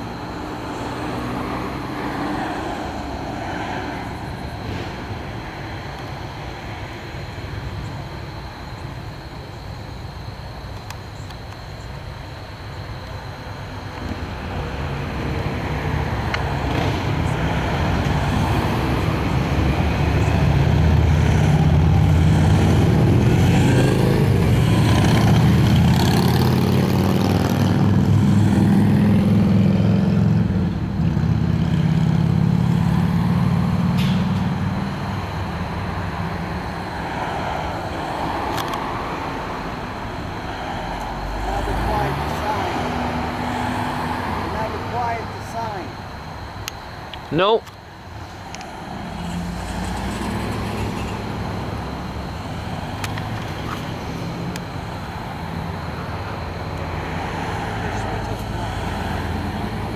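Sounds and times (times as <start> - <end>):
road traffic passing: 0.0 - 59.9.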